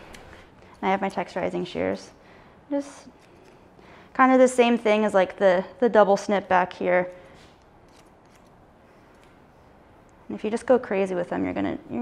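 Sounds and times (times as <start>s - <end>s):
shears snipping hair: 0.0s - 1.9s, 7.8s - 8.5s.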